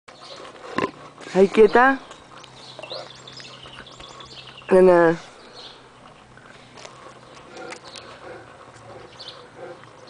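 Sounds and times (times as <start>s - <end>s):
songbirds chirping: 0.1s - 10.0s.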